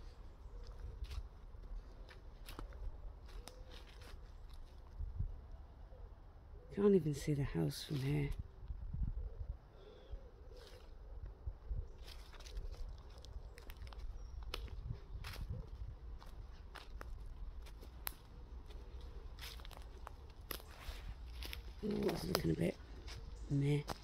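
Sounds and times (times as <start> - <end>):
footsteps on dry leaves and twigs: 0.0 - 5.1, 11.9 - 24.0.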